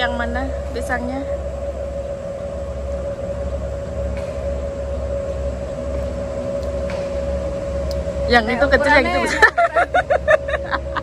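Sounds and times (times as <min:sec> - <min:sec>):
low uneven rumble: 0:00.0 - 0:11.0
steady humming tone: 0:00.0 - 0:11.0.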